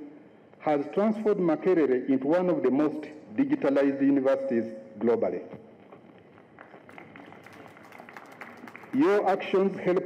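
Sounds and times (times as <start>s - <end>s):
low background noise: 0.0s - 10.0s
faint scattered clapping: 5.9s - 9.4s.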